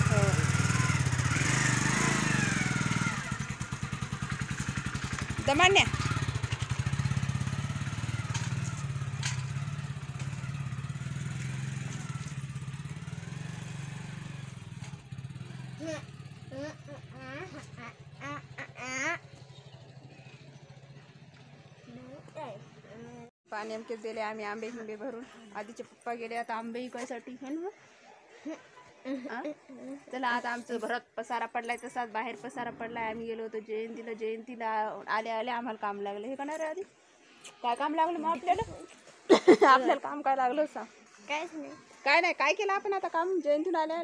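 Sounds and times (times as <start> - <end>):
motorcycle engine revving: 0.0 - 23.3.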